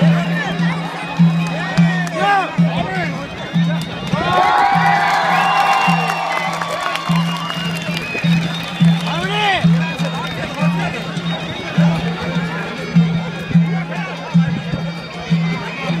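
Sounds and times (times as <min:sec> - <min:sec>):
crowd voices: 0:00.0 - 0:16.0
reed pipes folk music: 0:00.0 - 0:16.0.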